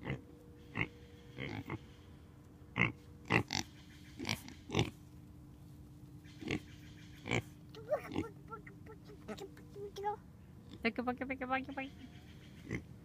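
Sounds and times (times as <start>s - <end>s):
pigs grunting: 0.0s - 2.0s, 2.8s - 5.0s, 6.3s - 9.4s, 12.0s - 12.9s.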